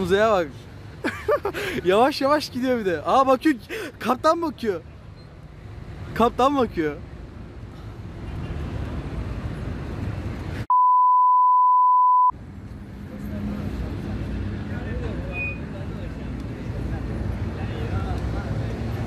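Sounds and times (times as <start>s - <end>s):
outdoor background noise: 0.0s - 10.7s, 12.3s - 19.0s
high censor beep: 10.7s - 12.3s.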